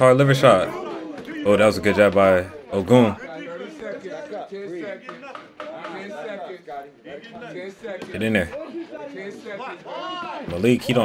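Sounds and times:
men talking and calling out: 0.0 - 11.0.

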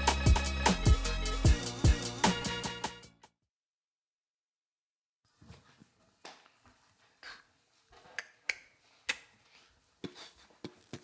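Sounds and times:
footsteps on hardwood floor: 10.0 - 11.0.

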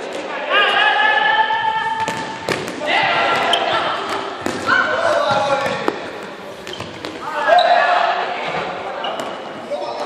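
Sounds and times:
voices shouting in a hall: 0.0 - 5.8, 7.2 - 10.0
balls bouncing on hard floor: 2.0 - 7.3.

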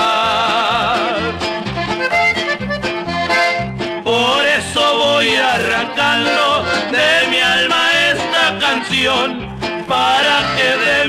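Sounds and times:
button accordion melody: 0.0 - 11.0
steady bass rhythm: 0.0 - 11.0.

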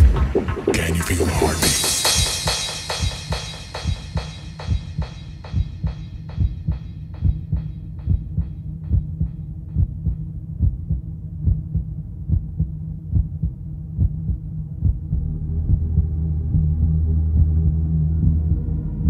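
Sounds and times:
deep bass note: 0.0 - 7.5, 14.0 - 19.0
hard house kick drum: 0.0 - 15.8
low bass drone: 0.0 - 19.0.

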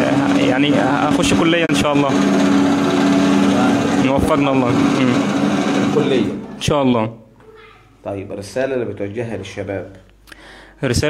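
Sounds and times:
electric motor humming: 0.0 - 6.6.

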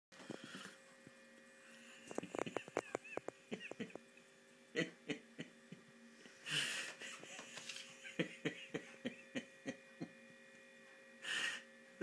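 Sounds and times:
low electrical hum: 0.2 - 12.0.

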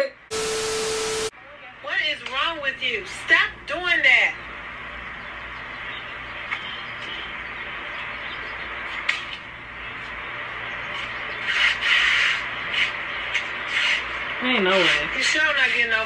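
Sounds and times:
phone scraping on asphalt: 10.8 - 16.0.

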